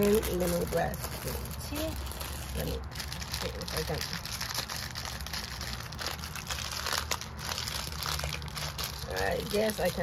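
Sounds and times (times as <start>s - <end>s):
tea packaging crinkling: 0.0s - 10.0s.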